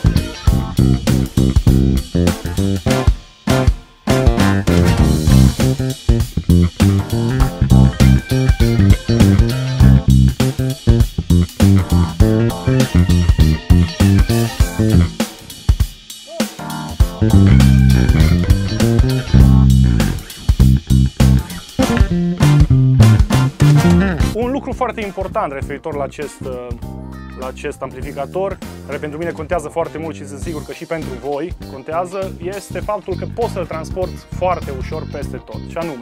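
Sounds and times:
electric bass groove: 0:00.0 - 0:15.6, 0:16.6 - 0:27.2, 0:27.9 - 0:36.0
backing track with drums: 0:00.0 - 0:26.9, 0:28.0 - 0:36.0.

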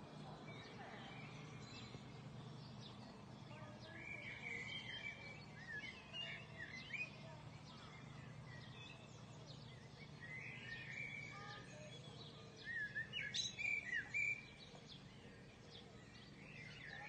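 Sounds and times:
birds chirping and calling: 0:00.0 - 0:17.0.

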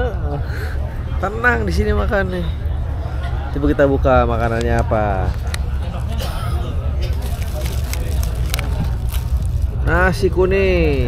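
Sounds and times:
steady low rumble: 0:00.0 - 0:11.0
plastic and foil crinkling: 0:07.0 - 0:10.2.

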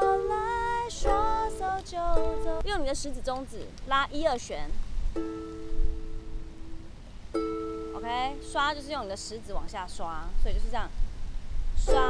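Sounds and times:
ukulele strings plucked: 0:00.0 - 0:03.5, 0:05.1 - 0:09.3, 0:11.8 - 0:12.0.

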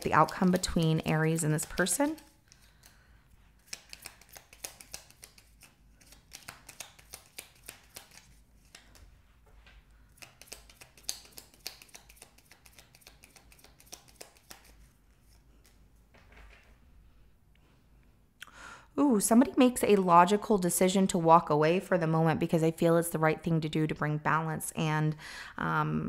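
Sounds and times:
cards being shuffled: 0:00.0 - 0:03.0, 0:03.6 - 0:09.1, 0:10.2 - 0:15.8.

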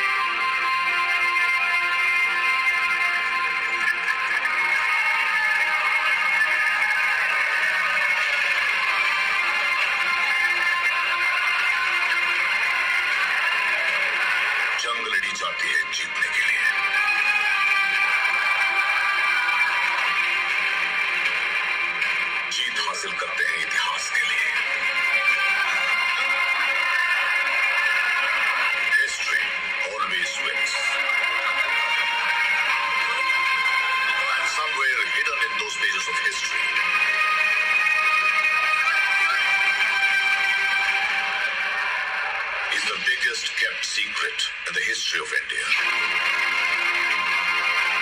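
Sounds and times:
sustained background film music: 0:00.0 - 0:48.0
man speaking: 0:14.8 - 0:16.8, 0:22.5 - 0:24.6, 0:28.9 - 0:30.9, 0:34.2 - 0:36.6, 0:42.7 - 0:45.8.

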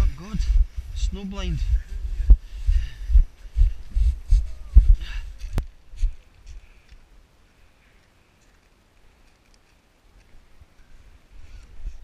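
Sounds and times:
footsteps running on snow: 0:00.3 - 0:06.2.

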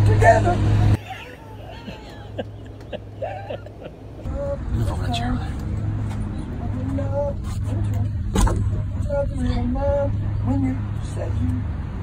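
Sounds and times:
steady low hum: 0:00.1 - 0:11.5.

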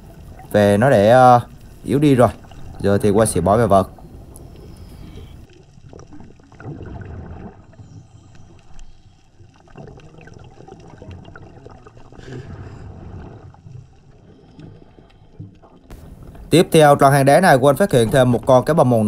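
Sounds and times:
muffled underwater gurgling: 0:00.0 - 0:19.0.

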